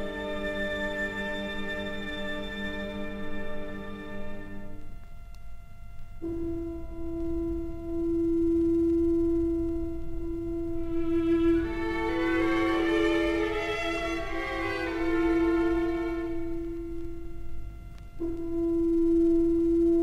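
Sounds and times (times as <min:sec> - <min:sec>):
strings playing: 0:10.8 - 0:17.5
orchestra holding chord: 0:10.9 - 0:16.8.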